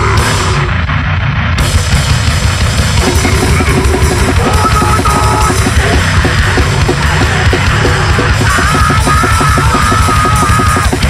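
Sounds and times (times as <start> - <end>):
fast heavy band music: 0.0 - 11.0
rapid drum kit playing: 0.0 - 11.0.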